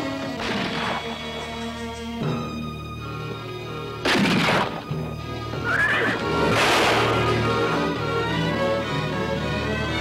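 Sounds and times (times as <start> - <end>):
film soundtrack music: 0.0 - 10.0
loud gunshot: 0.4 - 1.1, 4.0 - 4.8, 6.5 - 7.3
horse whinnying: 5.6 - 6.6.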